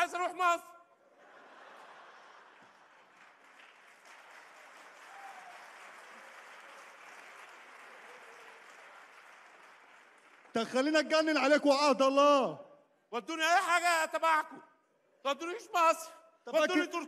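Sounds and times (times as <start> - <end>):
audience applauding: 1.5 - 11.5.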